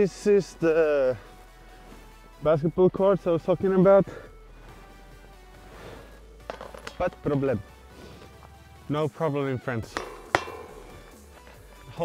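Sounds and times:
faint background music: 0.0s - 12.0s
sharp ringing clink: 9.9s - 11.6s.

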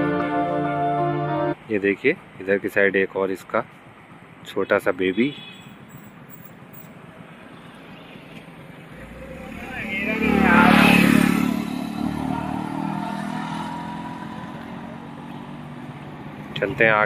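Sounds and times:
vehicle engine passing: 8.5s - 17.0s.

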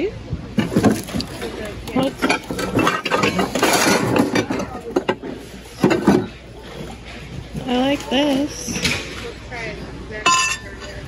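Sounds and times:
glass-on-glass clink: 10.3s - 11.0s.

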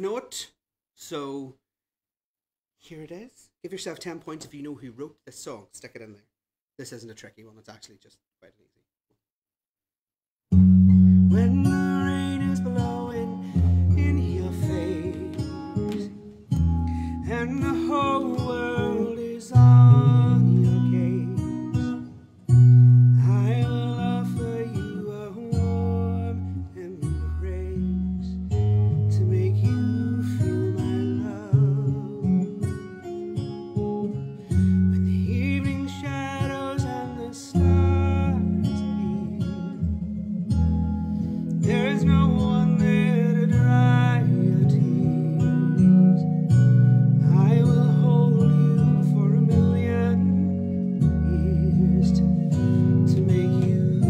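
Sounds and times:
held bass notes: 10.5s - 32.7s, 37.6s - 54.0s
acoustic guitar: 10.5s - 54.0s
man singing: 11.3s - 22.1s, 23.2s - 40.0s, 41.6s - 46.4s, 47.2s - 54.0s.

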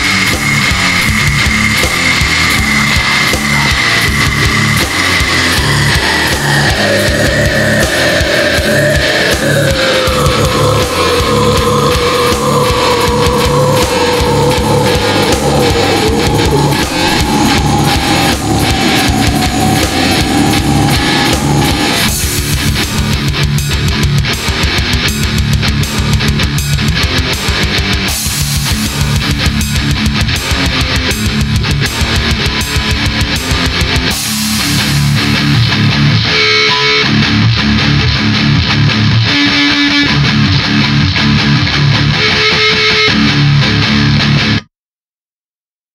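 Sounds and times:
heavy metal music: 0.0s - 44.7s.

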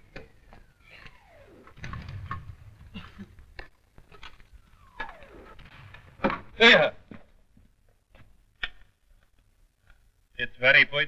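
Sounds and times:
knocks and clatter: 0.1s - 8.8s
artillery shells whistling down: 0.5s - 6.9s.

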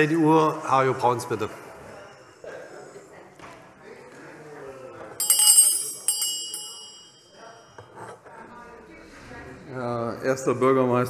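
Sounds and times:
murmur of a large hall: 0.0s - 11.0s
small bell ringing: 5.2s - 7.8s.

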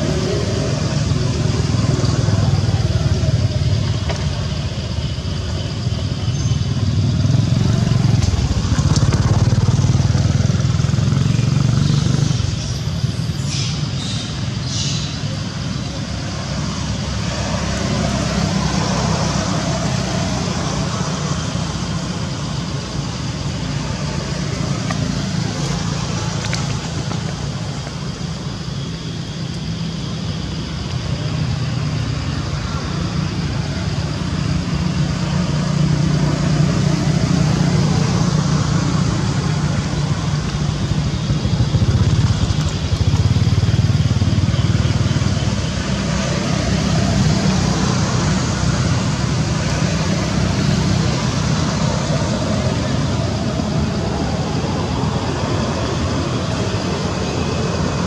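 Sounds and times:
low outdoor background rumble: 0.0s - 58.0s.

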